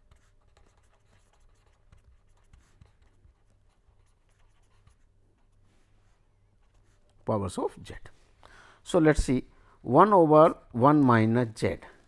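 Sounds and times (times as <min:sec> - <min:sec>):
pen scratching on paper: 0:00.0 - 0:05.6.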